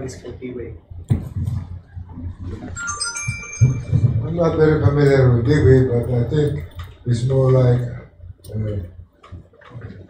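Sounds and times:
microphone handling noise: 0:01.1 - 0:04.6
high ringing tones: 0:02.6 - 0:06.7.

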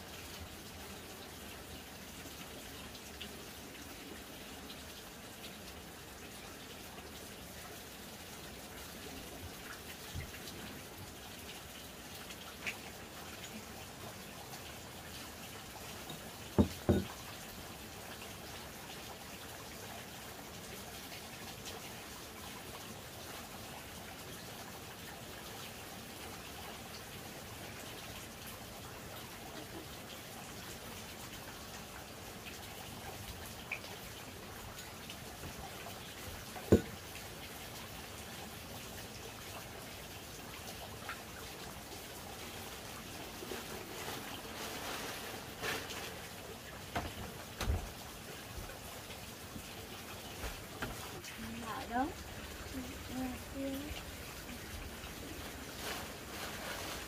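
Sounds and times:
water trickling: 0:00.0 - 0:57.0
sharp knocks: 0:16.6 - 0:17.1.

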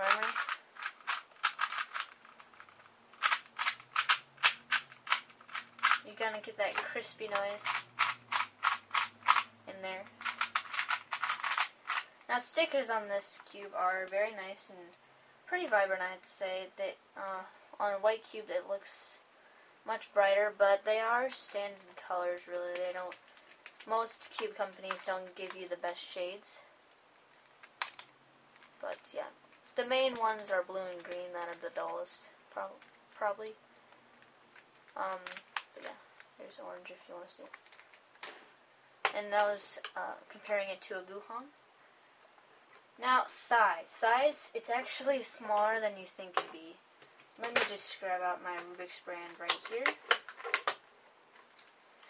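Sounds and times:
puzzle cube clicking as turned: 0:00.0 - 0:06.0, 0:06.7 - 0:12.2, 0:22.4 - 0:25.6, 0:27.3 - 0:29.0, 0:34.5 - 0:36.3, 0:49.3 - 0:50.8.

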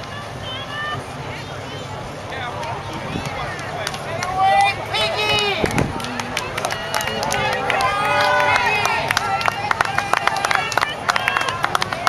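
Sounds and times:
crowd chatting: 0:00.0 - 0:12.0.

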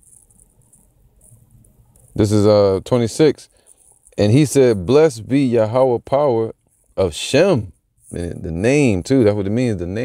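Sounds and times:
high-pitched insect chirping: 0:00.0 - 0:05.9.

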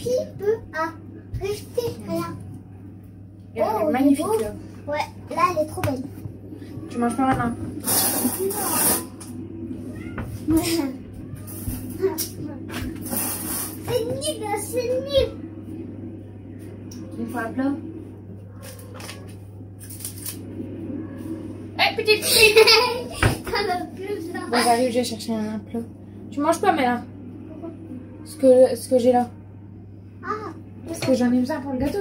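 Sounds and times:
children talking: 0:00.0 - 0:02.9, 0:03.5 - 0:15.9, 0:21.1 - 0:29.3, 0:30.2 - 0:32.0
steady low hum: 0:00.0 - 0:32.0.

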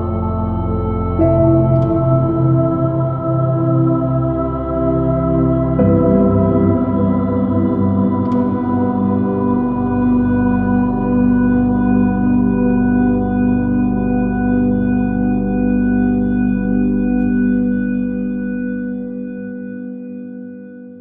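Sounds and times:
ambient held chord: 0:00.0 - 0:21.0.

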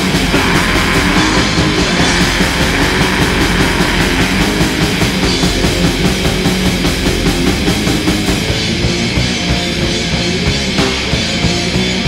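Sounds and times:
distorted guitars: 0:00.0 - 0:12.0
fast drumming: 0:00.0 - 0:12.0.

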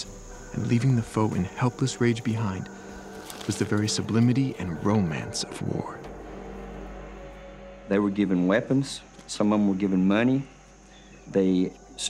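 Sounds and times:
steady low rumble: 0:00.0 - 0:10.8.

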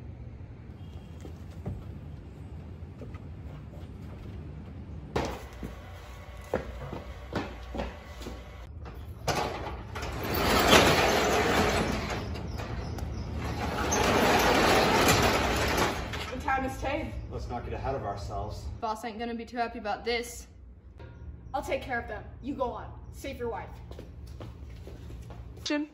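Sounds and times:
metal garage door rattling: 0:07.9 - 0:16.9.

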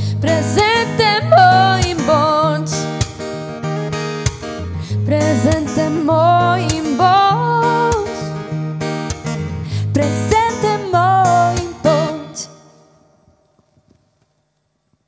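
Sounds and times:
woman singing slow song: 0:00.0 - 0:03.0, 0:04.9 - 0:08.4, 0:09.8 - 0:12.8
acoustic guitar: 0:00.0 - 0:14.6.

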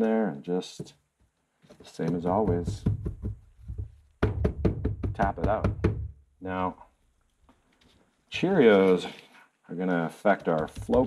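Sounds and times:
mold knocking on tabletop: 0:02.0 - 0:06.2, 0:10.4 - 0:11.0.

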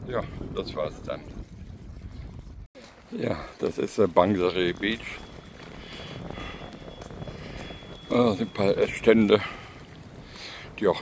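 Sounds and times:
wind rumbling on microphone: 0:00.0 - 0:02.7, 0:03.3 - 0:11.0
faint thin high tone: 0:06.4 - 0:09.3.

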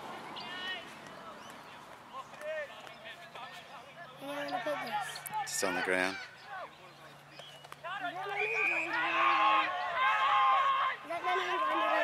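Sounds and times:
people shouting and calling out: 0:02.2 - 0:07.2, 0:07.8 - 0:12.0.

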